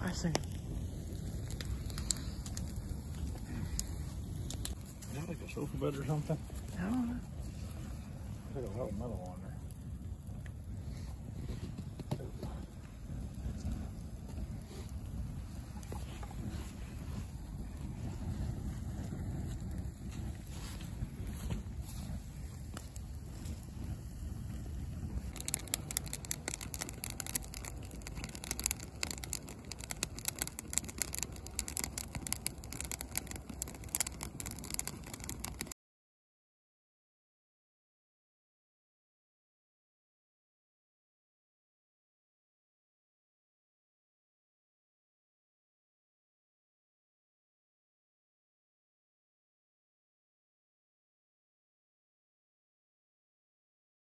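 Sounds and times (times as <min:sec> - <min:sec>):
fire crackling and popping: 0:00.0 - 0:35.8
low rumble of flames: 0:00.0 - 0:35.8.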